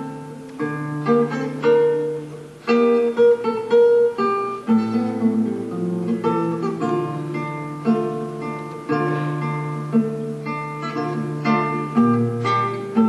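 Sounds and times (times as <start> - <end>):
classical guitar playing a march: 0.0 - 13.0.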